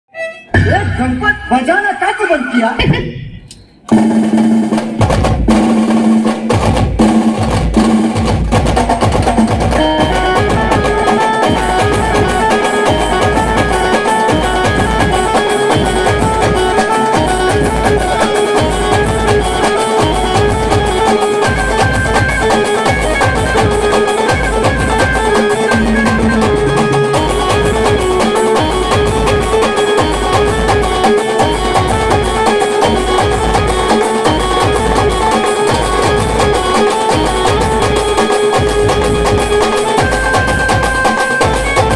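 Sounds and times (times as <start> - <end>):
amplified folk band melody: 0.1 - 1.8, 3.7 - 41.9
heavy drumbeat: 2.8 - 41.9.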